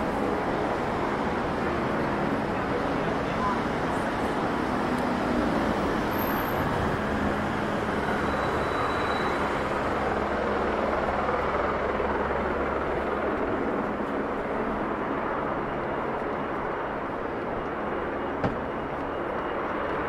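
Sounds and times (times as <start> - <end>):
distant traffic hum: 0.0 - 20.0.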